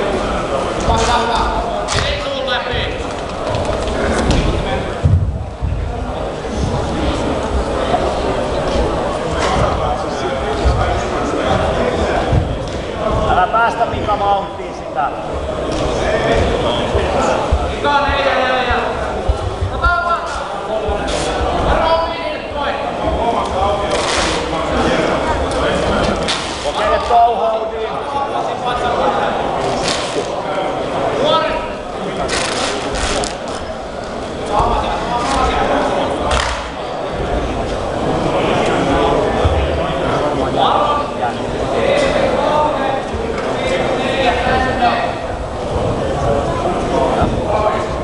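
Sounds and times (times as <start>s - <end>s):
voices calling out in echoing hall: 0.0s - 48.0s.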